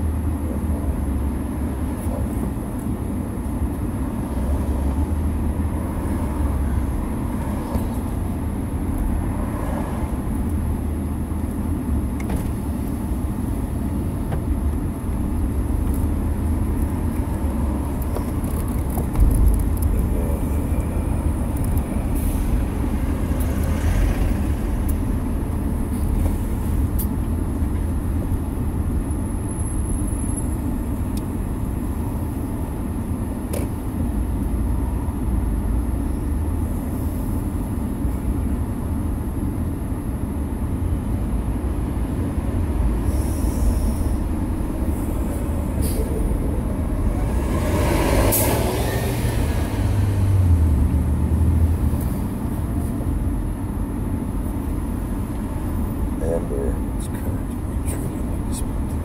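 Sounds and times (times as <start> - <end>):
car engine rumble in cabin: 0.0 - 59.0
road noise: 0.0 - 59.0.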